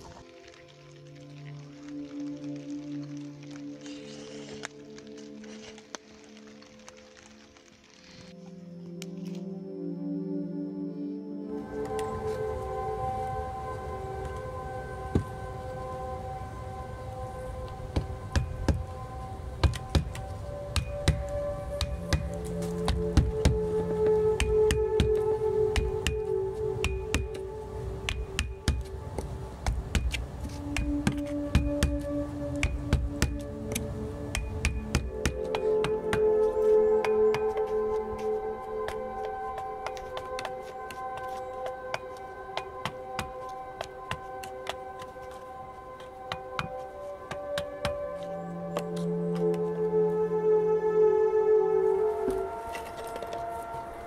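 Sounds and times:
ambient background music: 0.0 - 54.0.

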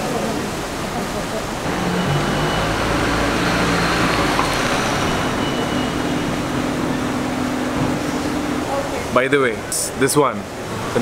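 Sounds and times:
vehicle engine running: 1.7 - 8.8.

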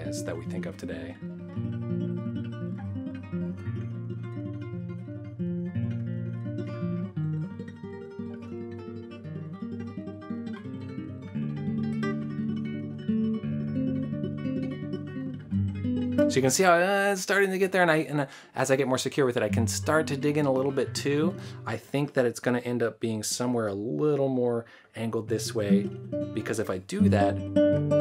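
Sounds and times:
classical guitar tremolo: 0.0 - 16.6, 19.4 - 21.8, 25.3 - 28.0.

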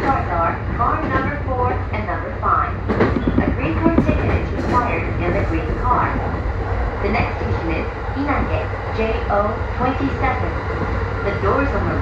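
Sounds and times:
automated onboard announcement: 0.0 - 6.4, 7.0 - 10.6, 11.2 - 12.0
train rumble from inside: 0.0 - 12.0.

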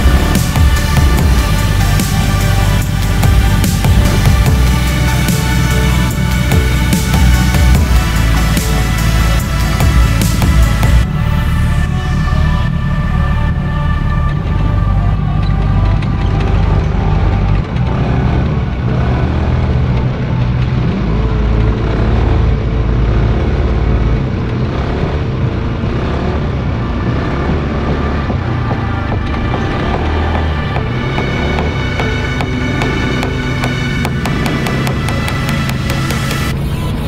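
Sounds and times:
background music: 0.0 - 37.0
ride rumble: 0.0 - 37.0
small engine running: 0.0 - 37.0.

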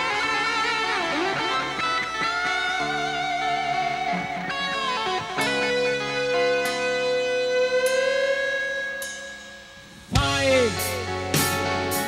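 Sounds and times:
electric guitar long lead note: 0.0 - 12.0.

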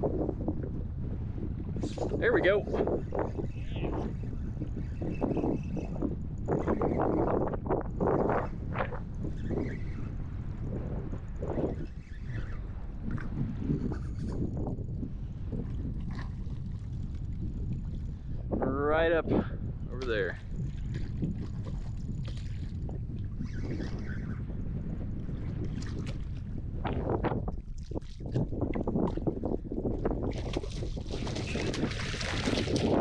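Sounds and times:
strong wind buffeting microphone: 0.0 - 33.0.

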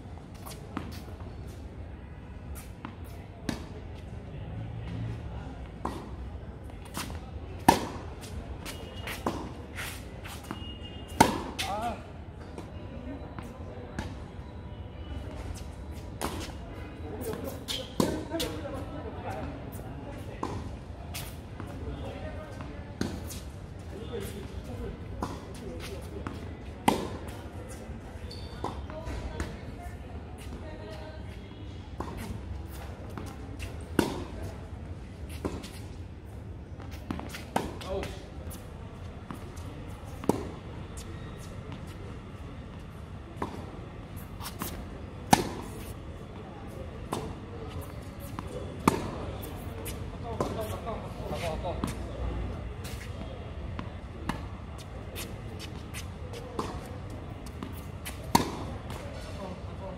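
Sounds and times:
tennis ball bouncing: 25.2 - 27.3, 32.0 - 34.3, 36.8 - 38.6, 39.2 - 41.0, 43.4 - 43.7, 44.4 - 45.9, 47.1 - 50.8, 53.8 - 59.0
tennis ball struck by racquet: 26.8 - 27.3, 33.8 - 34.3, 40.2 - 40.6, 44.4 - 45.8, 47.1 - 47.3, 48.3 - 50.7, 55.2 - 59.0.

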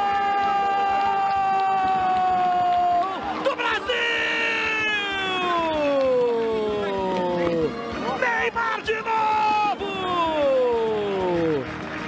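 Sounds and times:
man shouting goal call: 1.8 - 11.4.

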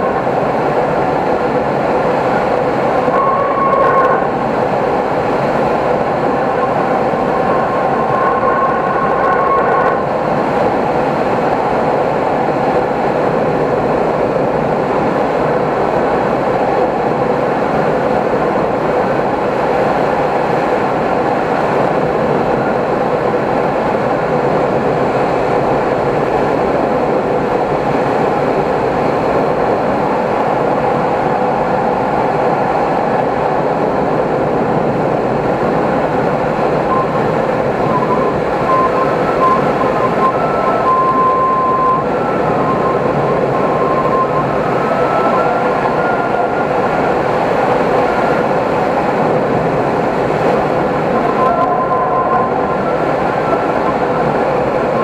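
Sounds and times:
airflow rushing over canopy: 0.0 - 55.0
faint wavering whistle: 2.8 - 4.4, 5.8 - 10.1, 36.9 - 48.4, 51.1 - 55.0.

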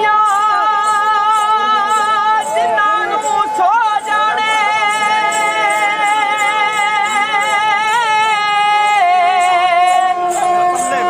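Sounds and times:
folk music long held note: 4.3 - 11.0.

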